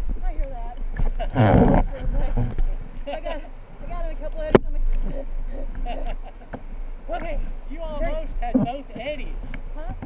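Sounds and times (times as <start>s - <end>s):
wind: 0.0s - 10.0s
people talking indistinctly: 0.2s - 10.0s.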